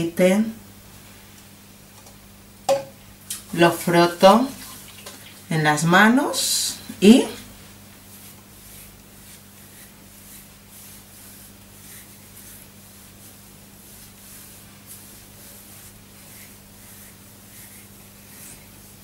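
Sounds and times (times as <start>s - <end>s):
steady low hum: 0.0s - 19.0s
fingers rustling through hair: 6.4s - 19.0s.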